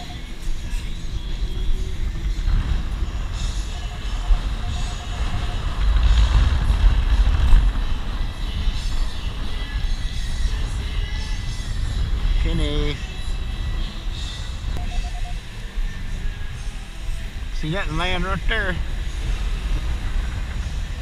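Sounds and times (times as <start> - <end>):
heavy low rumble: 0.0 - 21.0
metal detector beeps: 14.8 - 15.4.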